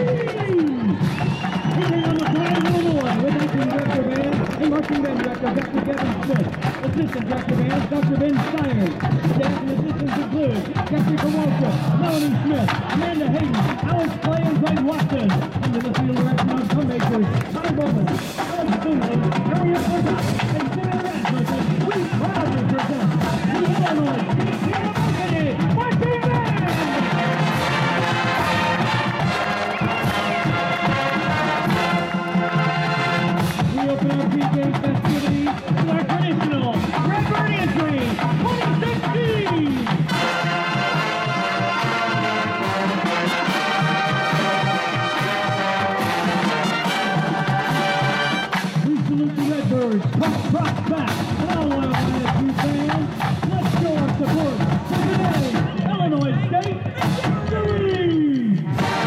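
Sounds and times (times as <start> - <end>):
marching band playing: 0.0 - 59.0
snare and bass drums: 0.0 - 59.0
brass sustained chords: 26.7 - 33.6, 40.1 - 48.6, 58.8 - 59.0.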